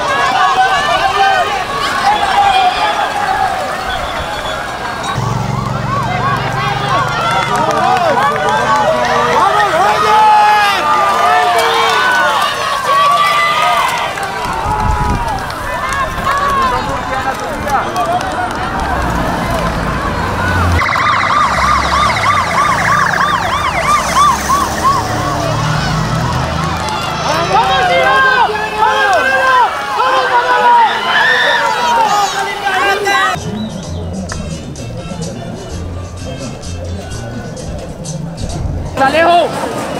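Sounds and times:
sirens wailing: 0:00.0 - 0:39.8
spectators' voices: 0:00.0 - 0:39.9
siren yelping: 0:20.0 - 0:26.7.

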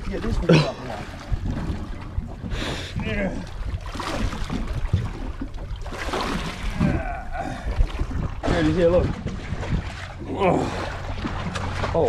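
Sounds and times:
wind on microphone: 0:00.0 - 0:05.8, 0:06.5 - 0:11.7
water noise around boat: 0:00.0 - 0:12.0.

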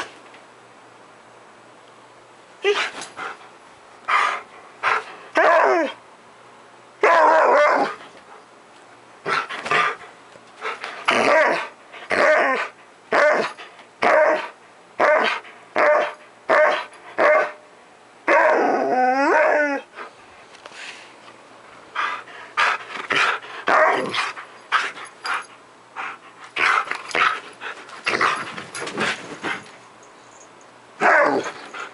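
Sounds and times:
dog barking and growling: 0:04.1 - 0:06.0, 0:07.0 - 0:08.1, 0:11.0 - 0:17.6, 0:18.2 - 0:19.9, 0:22.0 - 0:25.0, 0:31.0 - 0:31.9.

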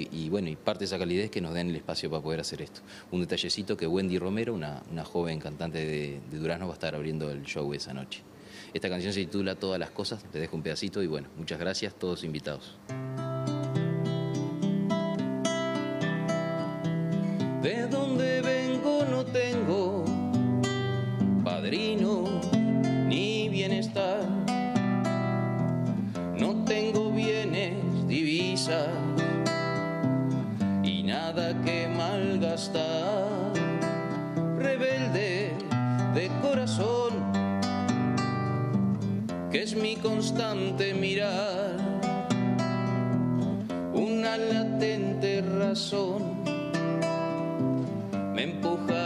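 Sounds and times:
fingerpicked classical guitar: 0:12.8 - 0:49.0
man singing: 0:17.6 - 0:20.4, 0:21.4 - 0:24.6, 0:26.4 - 0:29.6, 0:30.8 - 0:33.9, 0:34.6 - 0:37.4, 0:39.5 - 0:42.1, 0:43.9 - 0:46.6, 0:48.3 - 0:49.0.

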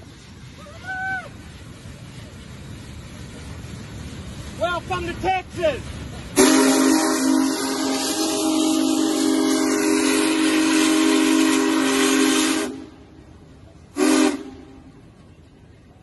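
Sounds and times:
hiss of steam: 0:00.0 - 0:15.1
steam whistle blast: 0:06.4 - 0:13.0, 0:13.9 - 0:14.8.

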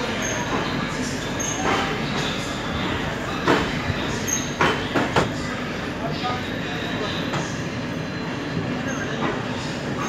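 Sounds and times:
train wheels on rails: 0:00.0 - 0:05.8, 0:08.6 - 0:10.0.

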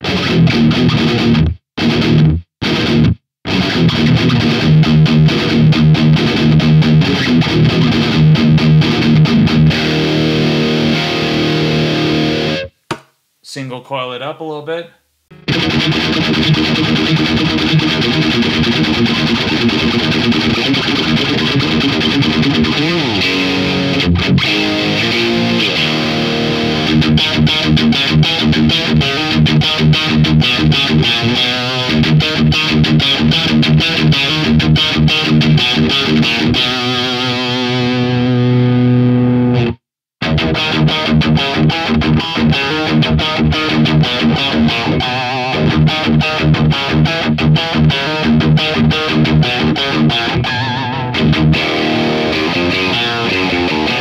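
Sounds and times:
distorted electric guitar riffing: 0:00.0 - 0:12.8, 0:15.3 - 0:54.0.

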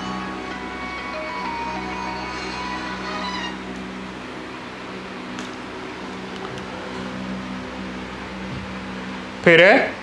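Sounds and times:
low hum of held tones: 0:00.0 - 0:10.0.

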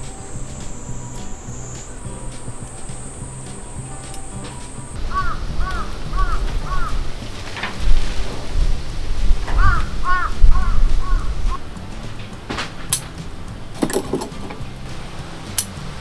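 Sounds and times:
low rumble: 0:00.0 - 0:16.0
crow cawing: 0:05.0 - 0:07.1, 0:09.5 - 0:11.4.

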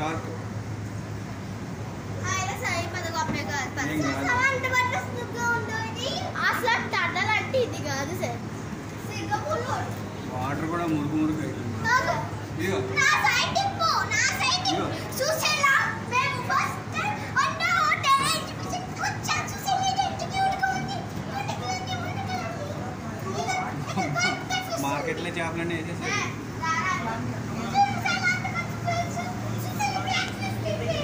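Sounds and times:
children chattering and calling out: 0:00.0 - 0:31.0
steady low hum: 0:00.0 - 0:31.0.

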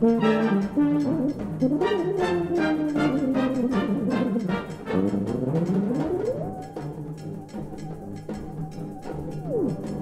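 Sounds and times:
brass band playing: 0:00.0 - 0:06.0.

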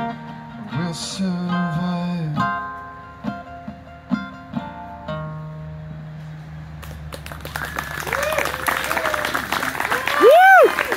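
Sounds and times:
acoustic guitar notes: 0:00.0 - 0:06.8
audience applause: 0:06.8 - 0:10.9
cheering voices: 0:07.7 - 0:10.9.

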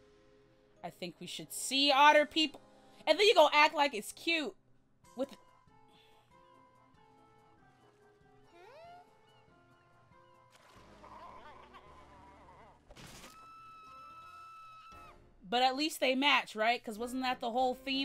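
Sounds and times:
light cartoon background music: 0:00.0 - 0:18.0.

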